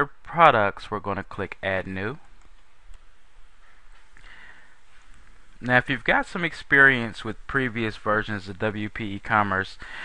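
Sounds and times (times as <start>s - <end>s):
low recording hiss: 0.0s - 10.0s.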